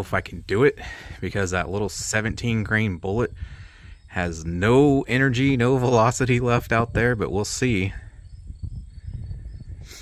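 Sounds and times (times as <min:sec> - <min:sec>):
wind rumbling on microphone: 0:00.0 - 0:10.0
insects chirping: 0:02.5 - 0:10.0.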